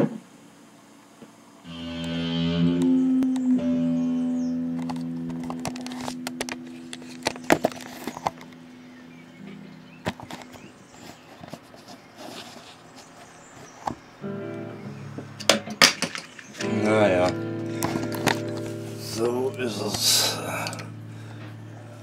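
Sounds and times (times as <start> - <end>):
electric guitar notes ringing: 1.7 - 10.9, 14.2 - 22.0.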